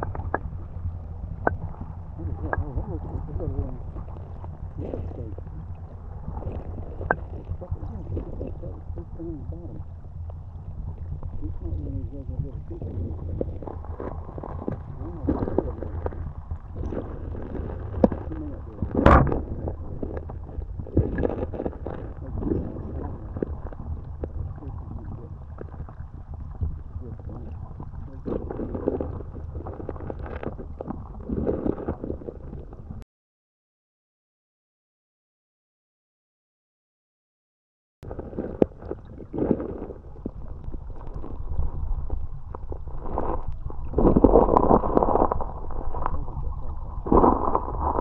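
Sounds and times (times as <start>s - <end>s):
muffled river current underwater: 0.0s - 33.0s, 38.0s - 48.0s.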